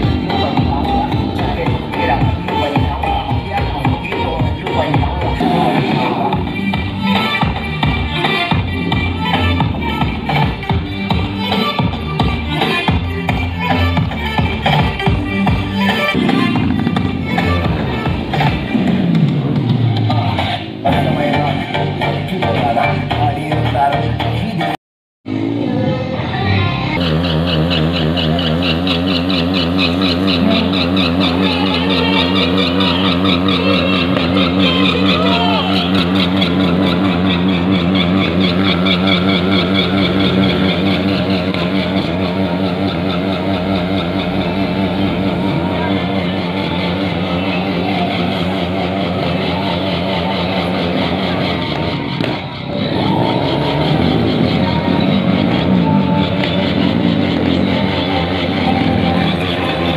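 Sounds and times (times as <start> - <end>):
motorcycle engine revving: 0.0 - 24.6, 25.3 - 59.9.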